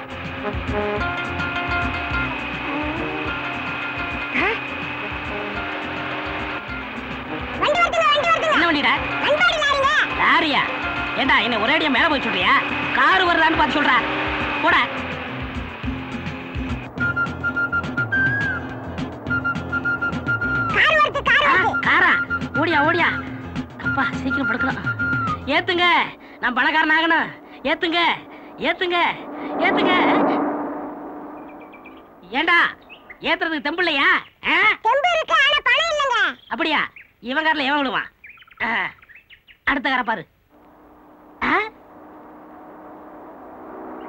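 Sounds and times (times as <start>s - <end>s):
truck engine rumble: 0.0s - 33.6s, 40.4s - 44.0s.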